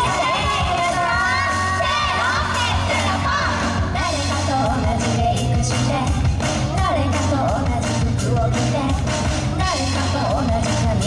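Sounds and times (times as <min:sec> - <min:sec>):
pop backing track with beat: 0:00.0 - 0:11.0.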